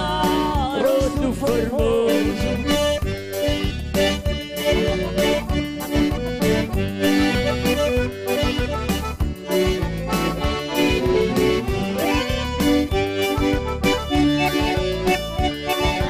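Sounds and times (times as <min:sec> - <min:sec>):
man singing: 0:00.0 - 0:02.9
accordion dance tune: 0:00.0 - 0:16.0
electronic keyboard: 0:00.0 - 0:16.0
steady beat: 0:00.0 - 0:16.0.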